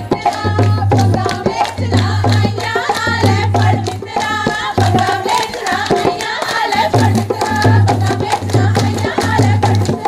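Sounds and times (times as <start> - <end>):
drum beat: 0.0 - 10.0
group clapping in rhythm: 0.0 - 10.0
women singing: 0.0 - 10.0.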